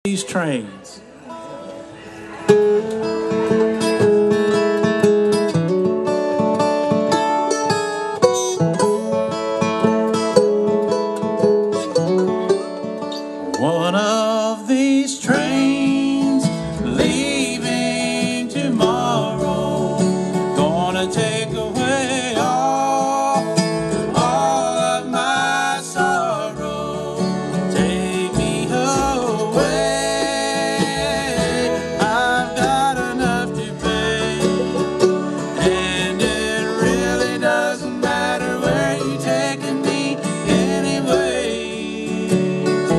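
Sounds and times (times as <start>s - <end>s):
bluegrass band playing: 0.1s - 42.9s
sliding lead notes: 1.1s - 14.5s, 15.3s - 42.9s
upright bass: 2.5s - 14.6s, 15.2s - 42.9s.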